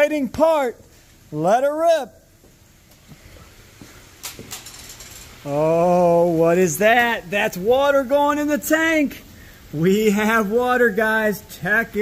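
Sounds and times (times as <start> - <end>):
water running into aquarium: 5.4 - 12.0.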